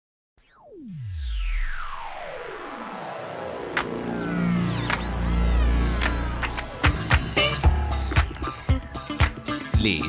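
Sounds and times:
synthesizer downward sweep: 0:00.4 - 0:09.8
deep bass tone: 0:03.9 - 0:10.0.

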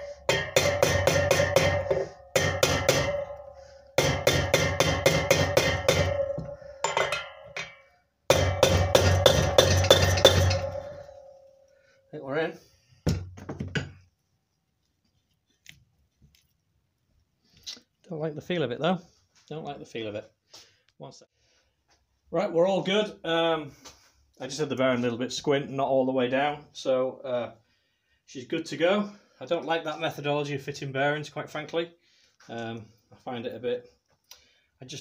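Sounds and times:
metallic ringing note: 0:09.6 - 0:11.7.

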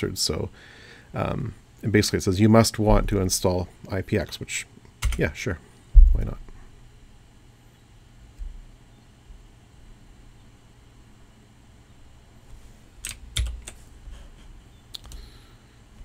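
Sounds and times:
faint low room hum: 0:00.0 - 0:16.0
computer keyboard keys clicking: 0:05.0 - 0:05.2, 0:13.0 - 0:13.8, 0:14.9 - 0:15.2
soft thump: 0:06.0 - 0:06.3.

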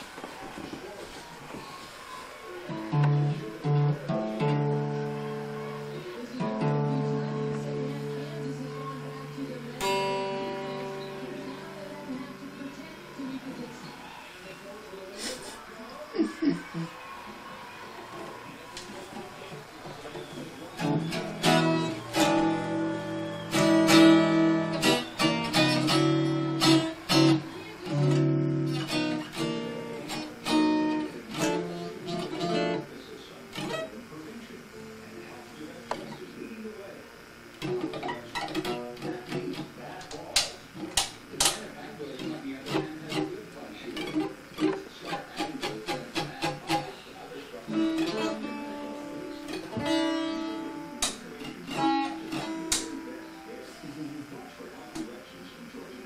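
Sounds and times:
plucked guitar notes: 0:02.7 - 0:12.6, 0:20.7 - 0:35.0, 0:37.2 - 0:47.0, 0:47.6 - 0:53.4
guitar strummed in chords: 0:02.7 - 0:12.8, 0:20.6 - 0:36.4, 0:37.1 - 0:55.2
guitar string clicks: 0:37.6 - 0:41.6, 0:51.0 - 0:53.0.

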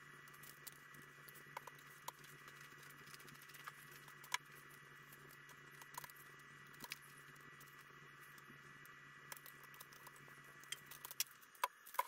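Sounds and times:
steady low hum and hiss: 0:00.0 - 0:12.0.

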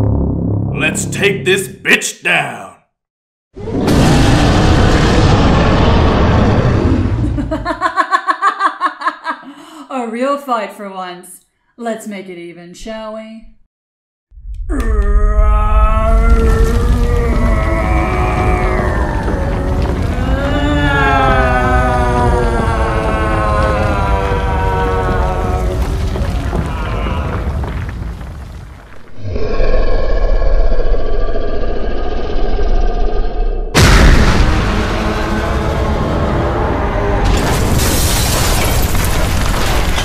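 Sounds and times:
deep rumble: 0:00.0 - 0:01.0, 0:14.4 - 0:39.6
dramatic music: 0:00.0 - 0:02.0
loud boom: 0:03.6 - 0:07.5, 0:33.8 - 0:40.0
monster roars and groans: 0:14.6 - 0:28.2, 0:29.0 - 0:38.8.

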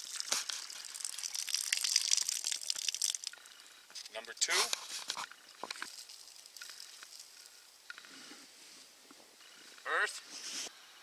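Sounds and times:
dry soil trickling: 0:00.0 - 0:08.0.

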